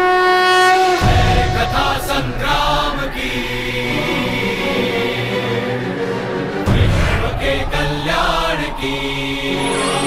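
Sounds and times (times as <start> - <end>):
conch shell blown: 0.0 - 1.9
deep rumbling music: 0.6 - 10.0.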